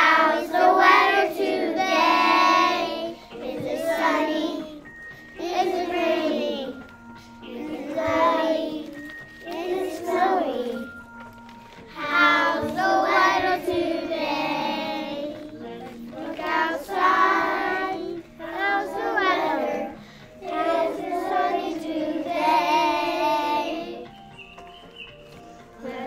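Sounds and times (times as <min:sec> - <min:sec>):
young children singing: 0:00.0 - 0:11.0, 0:11.9 - 0:24.3, 0:25.7 - 0:26.0.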